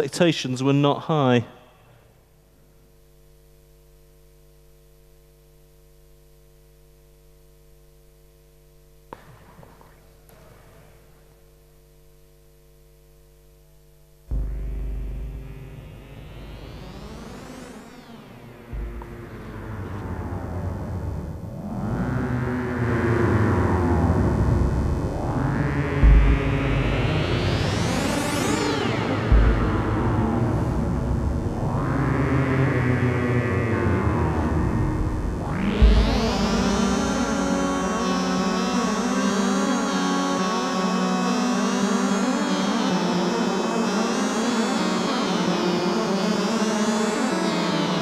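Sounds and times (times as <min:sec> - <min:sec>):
low hum: 0:11.3 - 0:32.5, 0:34.1 - 0:39.8
analogue synthesizer music: 0:13.5 - 0:48.0
kick-drum thumps: 0:14.3 - 0:17.4, 0:18.7 - 0:20.2, 0:26.0 - 0:27.8, 0:29.3 - 0:31.5, 0:35.4 - 0:38.2.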